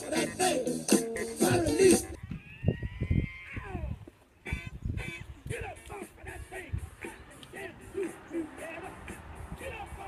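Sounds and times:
song playing: 0.0 - 2.2, 4.4 - 10.0
wind thumping on microphone: 2.1 - 5.8.

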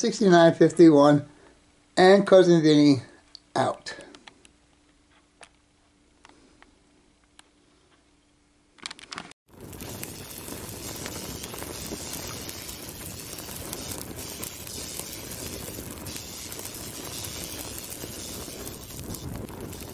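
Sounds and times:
fire crackling: 9.4 - 19.9.

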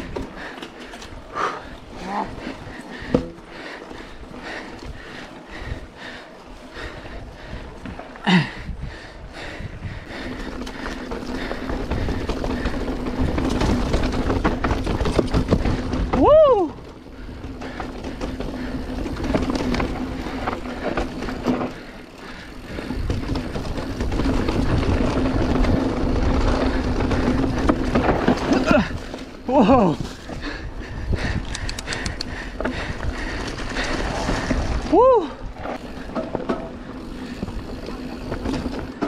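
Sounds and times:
bike tyres rolling on dirt trail: 0.0 - 39.0
person whooping: 16.2 - 16.8, 34.9 - 35.4.

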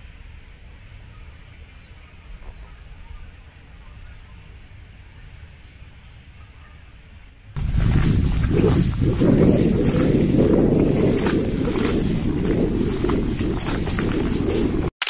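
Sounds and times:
rustling: 7.6 - 14.9
wind buffeting microphone: 7.6 - 14.9.

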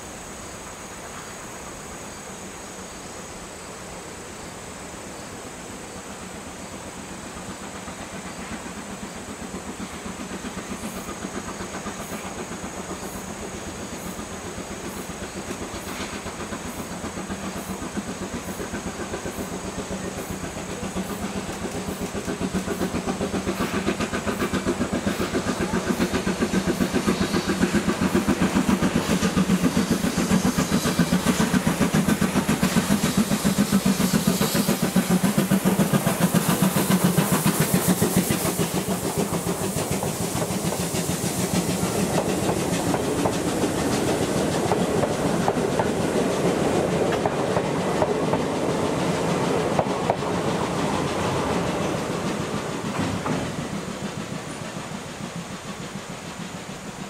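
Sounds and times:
steam hissing: 0.0 - 57.0
steam locomotive exhaust beats: 0.0 - 57.0
train wheels clacking on rail joints: 6.8 - 57.0.

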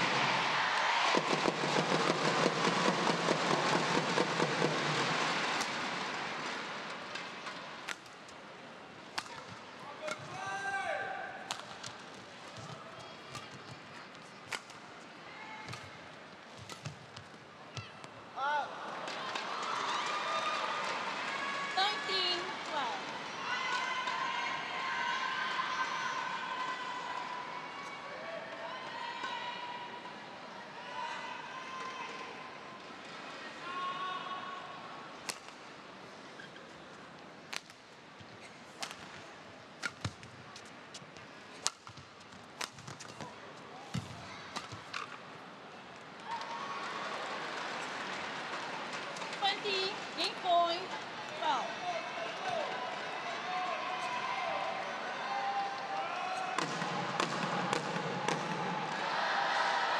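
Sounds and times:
crowd shouting and cheering: 0.0 - 7.6, 9.2 - 11.8, 17.7 - 35.1, 46.0 - 59.9
racket hitting shuttlecock: 9.1 - 10.4, 11.5 - 13.6, 14.5 - 14.8, 16.6 - 17.3, 39.8 - 40.3, 41.6 - 42.0, 42.6 - 43.3, 56.6 - 58.6.

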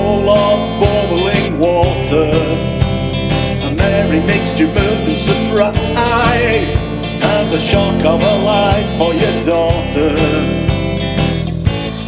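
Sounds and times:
rock band music: 0.0 - 12.0.

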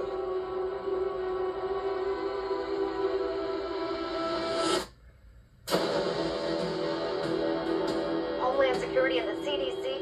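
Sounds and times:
sharp hit: 5.7 - 8.4
ominous trailer music: 5.7 - 10.0.

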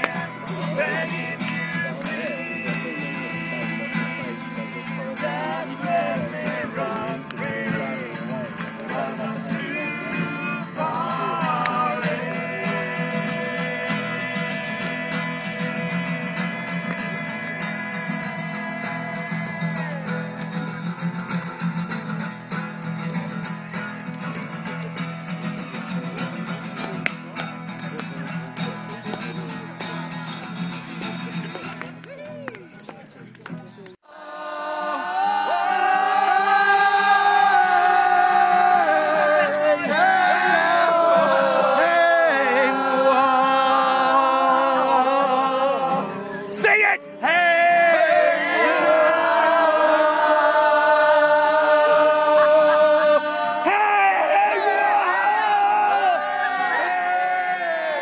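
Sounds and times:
person singing: 0.0 - 20.7, 34.0 - 58.0
guitar accompaniment: 0.0 - 33.8, 35.6 - 58.0.

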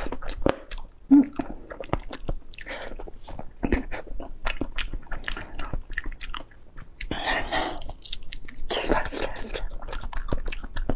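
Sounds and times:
biting and chewing: 0.0 - 10.9.

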